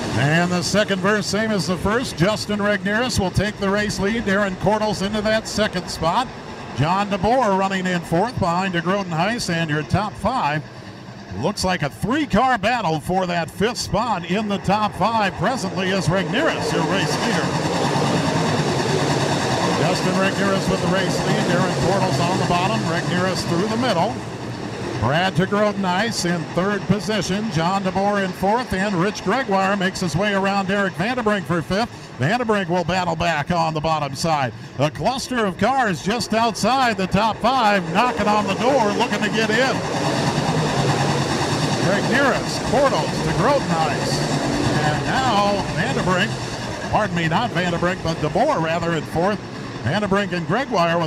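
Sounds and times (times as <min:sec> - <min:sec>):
stock car engines racing: 0:00.0 - 0:51.0.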